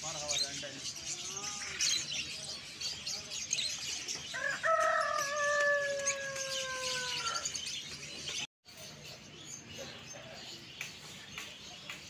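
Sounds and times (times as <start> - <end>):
small birds chirping: 0.0 - 12.0
rooster crowing: 4.3 - 7.5.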